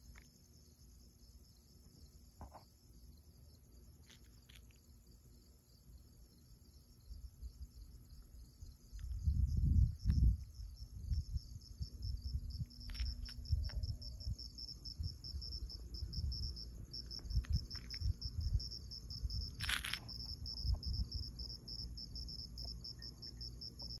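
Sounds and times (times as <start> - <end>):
crickets chirping: 0.0 - 24.0.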